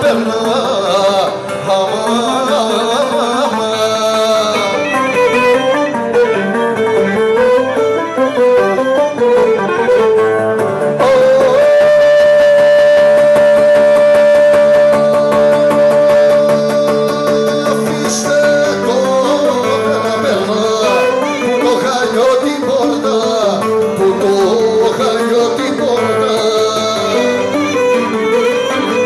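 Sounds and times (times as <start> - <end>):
folk dance music on lyra and lute: 0.0 - 29.0.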